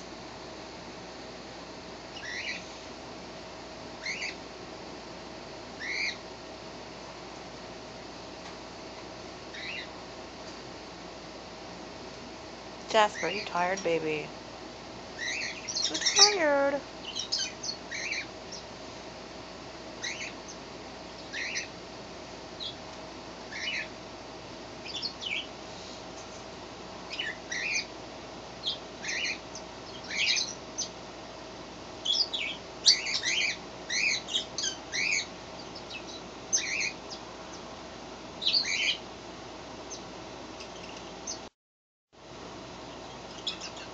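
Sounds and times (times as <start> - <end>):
faint steady hum: 0.0 - 41.5, 42.2 - 43.9
small bird chirping: 2.1 - 2.7, 4.0 - 4.4, 5.8 - 6.2, 9.5 - 10.0, 15.2 - 18.7, 20.0 - 20.6, 21.2 - 21.7, 22.6 - 22.8, 23.5 - 24.0, 24.8 - 25.6, 27.1 - 27.9, 28.6 - 31.0, 32.0 - 37.6, 38.4 - 39.0, 39.9 - 41.5, 42.9 - 43.9.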